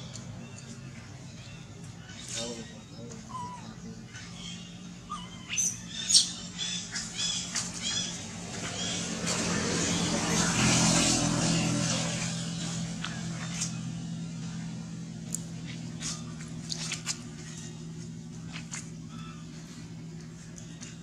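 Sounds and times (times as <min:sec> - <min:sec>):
steady low hum: 0:00.0 - 0:21.0
baby monkey squeaking: 0:03.3 - 0:03.8, 0:05.0 - 0:08.2
vehicle passing on road: 0:06.4 - 0:20.6.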